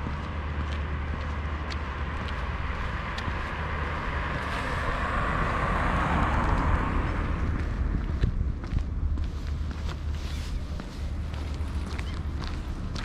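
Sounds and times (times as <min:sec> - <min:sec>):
car tyre noise: 0:00.0 - 0:13.0
traffic rumble: 0:00.0 - 0:13.0.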